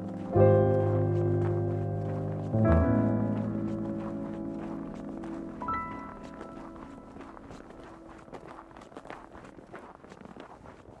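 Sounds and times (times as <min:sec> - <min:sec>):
footsteps crunching on snow: 0:00.0 - 0:11.0.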